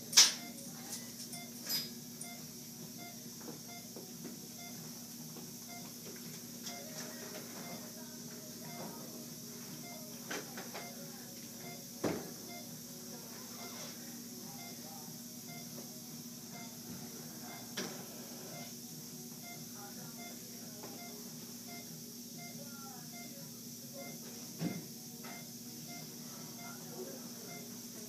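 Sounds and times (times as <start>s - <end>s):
room tone hum and hiss: 0.0s - 28.0s
faint indistinct voices: 6.6s - 28.0s.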